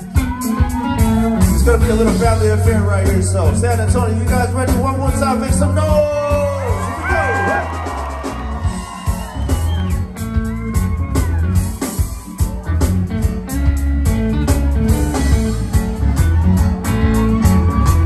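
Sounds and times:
drums with hi-hat beat: 0.0 - 18.0
electric bass: 0.0 - 18.0.

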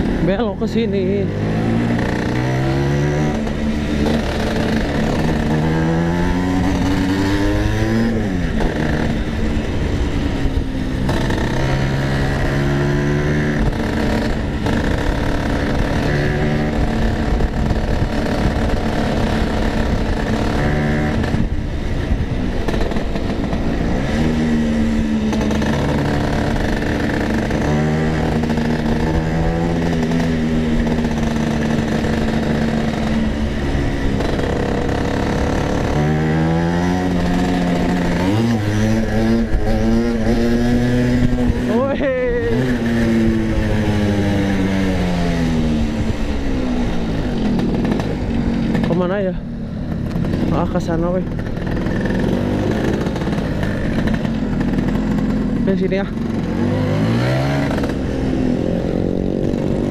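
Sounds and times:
scooter engine revving: 0.0 - 59.9.

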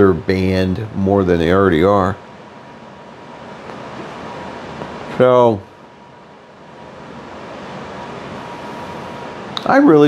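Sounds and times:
indoor room hiss: 0.0 - 10.0.

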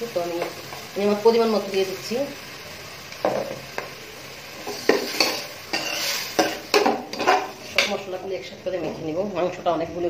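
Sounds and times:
metal spoon scraping metal pot: 4.7 - 8.0.

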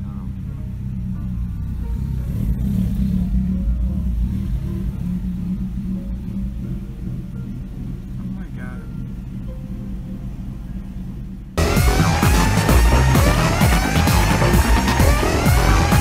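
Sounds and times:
vehicle engines idling in traffic: 0.0 - 16.0.

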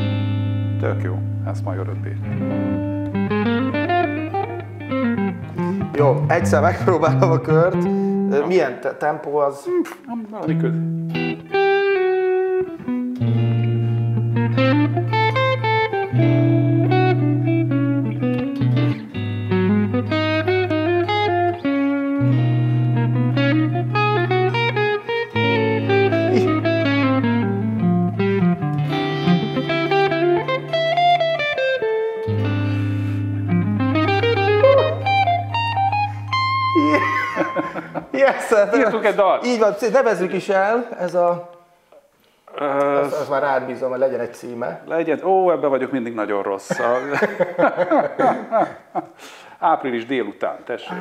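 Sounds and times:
electric guitar single-note lines: 0.0 - 8.4, 10.4 - 38.0
electric guitar chords: 0.0 - 8.5, 10.4 - 38.2.

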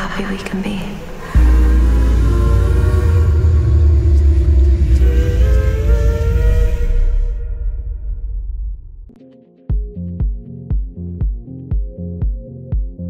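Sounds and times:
layered drone tones: 0.0 - 9.2
deep bass rumble: 1.4 - 9.2.

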